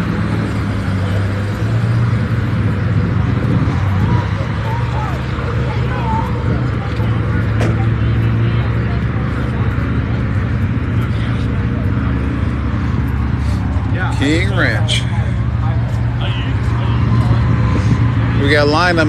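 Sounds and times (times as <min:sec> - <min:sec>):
vehicle engine idling: 0:00.0 - 0:19.0
people talking: 0:03.0 - 0:19.0.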